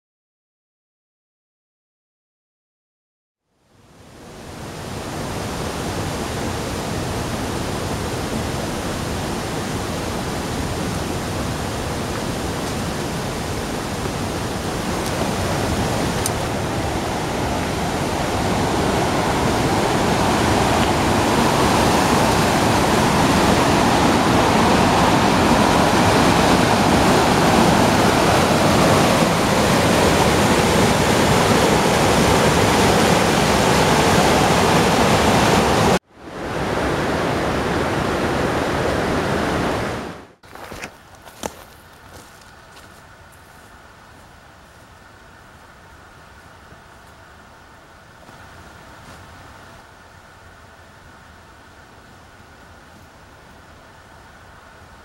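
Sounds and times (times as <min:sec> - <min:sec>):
stream rushing over rocks: 0:04.1 - 0:42.9.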